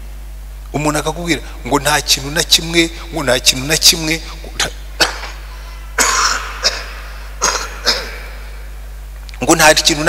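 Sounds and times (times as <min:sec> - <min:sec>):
man coughing into sleeve: 0:05.0 - 0:08.4.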